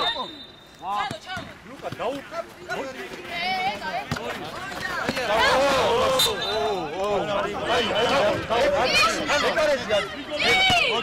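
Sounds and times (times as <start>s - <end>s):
voices shouting: 4.7s - 11.0s.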